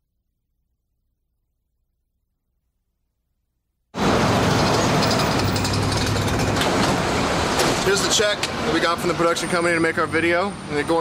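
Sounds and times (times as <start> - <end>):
traffic rumble and hiss: 4.0 - 11.0.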